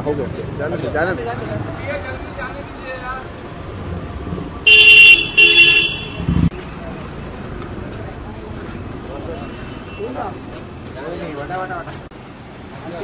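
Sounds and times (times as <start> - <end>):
car horn honks: 4.6 - 6.5.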